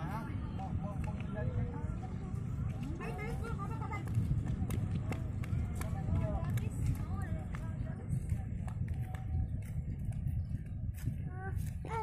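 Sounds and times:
people's voices: 0.0 - 12.0
wind on microphone: 0.0 - 12.0.

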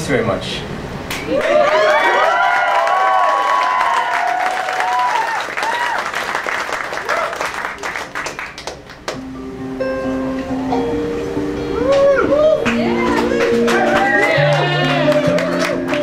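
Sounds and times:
audience applauding and cheering: 1.3 - 9.3, 11.8 - 16.0
acoustic guitar picking notes: 9.2 - 16.0.

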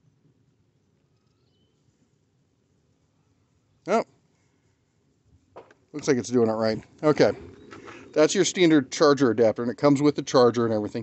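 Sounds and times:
faint high chirps: 1.0 - 2.0.

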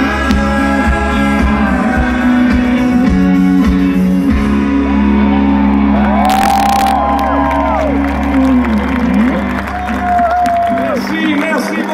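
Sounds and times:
crowd whooping and cheering: 4.6 - 11.9.

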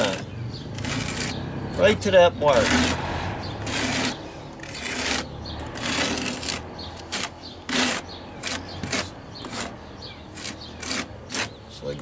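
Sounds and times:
trowel scraping mortar: 0.0 - 12.0.

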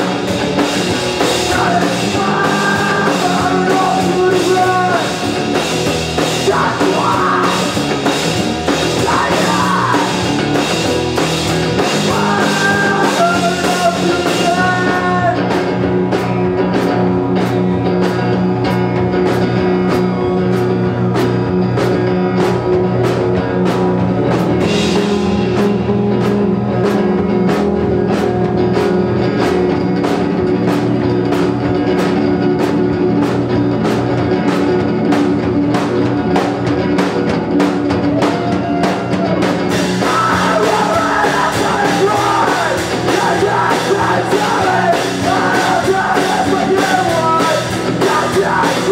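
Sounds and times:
rock band playing live: 0.0 - 48.9
person singing: 1.2 - 5.4, 6.2 - 10.5, 11.8 - 15.6, 38.2 - 48.9.

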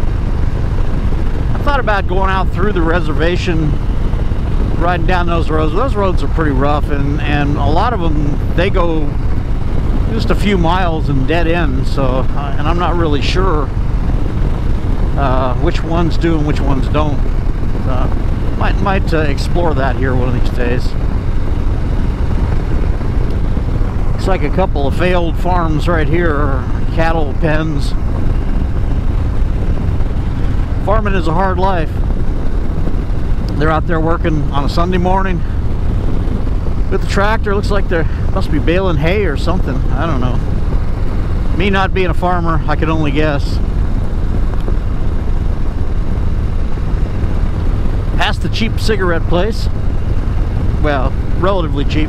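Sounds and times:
motorcycle engine cruising: 0.0 - 52.0
wind rush on microphone: 0.0 - 52.0.

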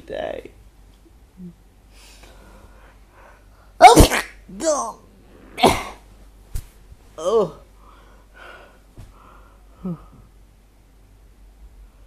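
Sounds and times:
man sneezing: 3.8 - 4.4, 5.6 - 6.1
short falling vocal sound: 7.2 - 7.7.

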